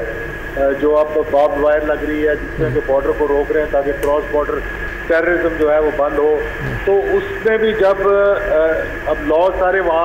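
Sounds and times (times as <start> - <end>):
man talking over telephone: 2.5 - 3.2.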